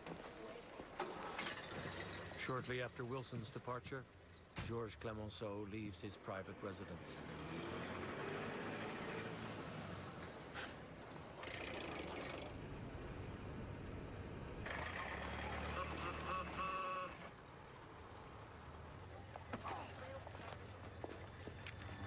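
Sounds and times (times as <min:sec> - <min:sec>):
car engine rumbling: 0:00.0 - 0:22.0.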